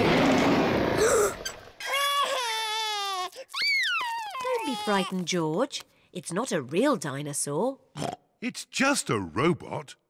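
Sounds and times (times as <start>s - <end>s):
young child wailing and crying: 1.0s - 5.2s.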